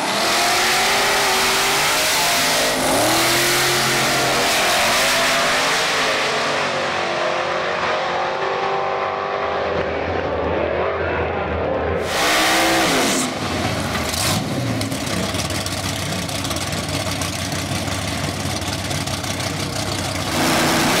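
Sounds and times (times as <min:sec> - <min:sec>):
race cars accelerating: 0:00.0 - 0:16.3, 0:18.0 - 0:21.0.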